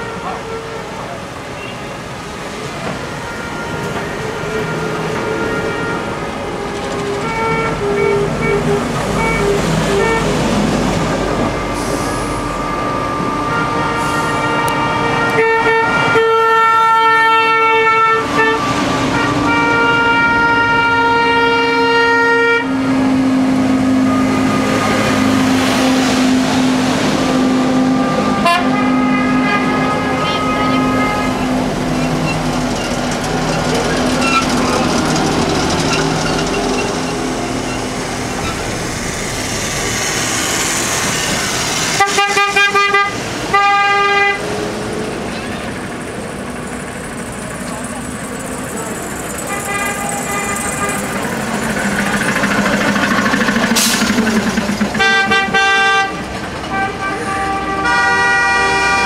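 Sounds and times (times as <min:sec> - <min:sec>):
horns sounding long tones: 0:00.0 - 0:44.7, 0:45.6 - 0:59.0
street and vehicle noise: 0:00.0 - 0:59.0
trolleybuses rolling past: 0:00.0 - 0:59.0.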